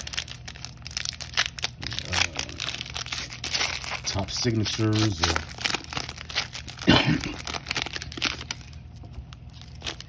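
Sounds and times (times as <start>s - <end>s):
cards rustling: 0.0s - 10.0s
foil wrapper crinkling and tearing: 0.0s - 10.0s.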